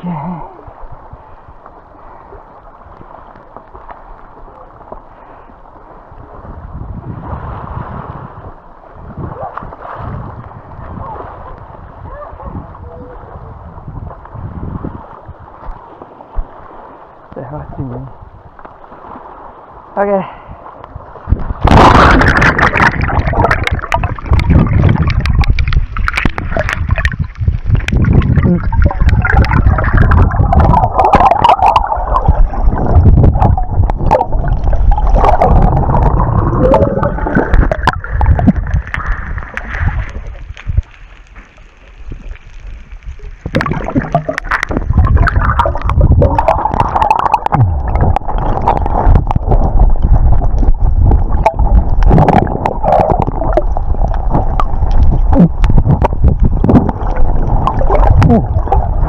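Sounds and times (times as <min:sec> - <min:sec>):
underwater churning and gurgling: 0:20.6 - 0:59.0
low rumble: 0:21.3 - 0:59.0.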